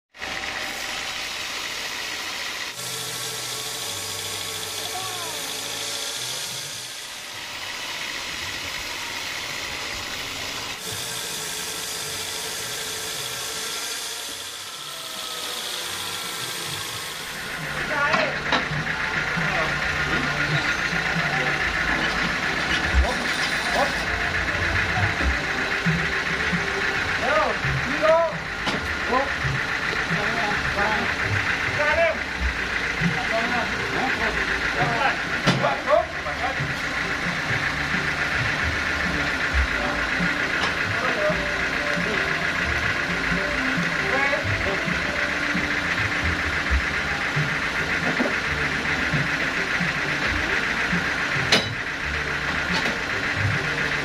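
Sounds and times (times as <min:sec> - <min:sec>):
band saw cutting through log: 0:00.1 - 0:54.0.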